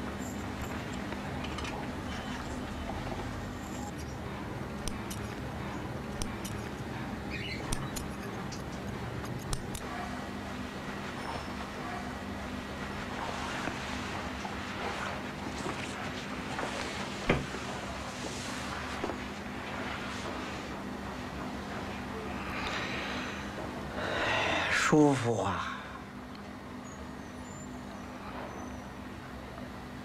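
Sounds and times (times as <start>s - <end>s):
low room hum: 0.0s - 30.0s
small scissors snipping: 6.1s - 6.9s, 7.7s - 9.9s
sharp click: 7.7s - 9.9s
towel rubbing on face: 12.8s - 20.8s.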